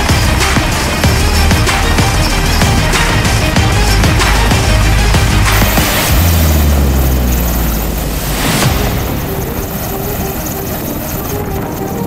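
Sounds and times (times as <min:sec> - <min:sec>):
helicopter hovering: 0:00.0 - 0:12.0.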